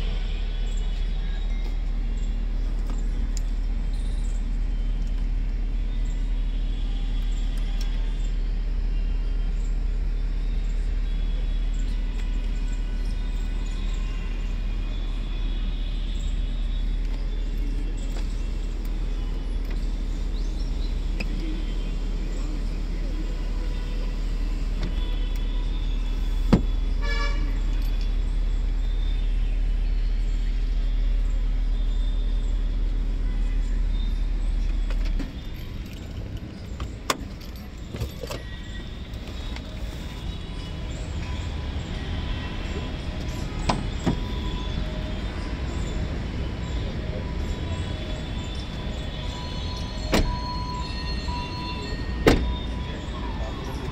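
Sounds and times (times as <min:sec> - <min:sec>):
vehicle cabin rumble: 0:00.0 - 0:53.9
diesel engine idling: 0:13.2 - 0:53.9.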